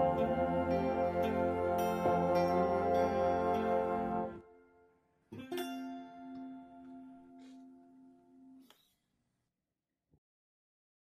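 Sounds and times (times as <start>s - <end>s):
clean electric guitar notes: 0.0s - 4.8s.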